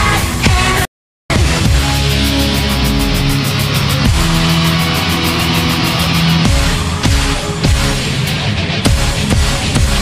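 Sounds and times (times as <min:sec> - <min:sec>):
live concert music heavy chords: 0:00.0 - 0:10.0
falling pitch slide: 0:03.1 - 0:07.8.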